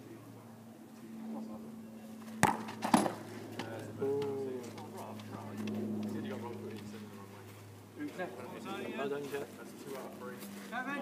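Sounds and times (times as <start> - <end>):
ball striking goal: 2.4 - 3.2.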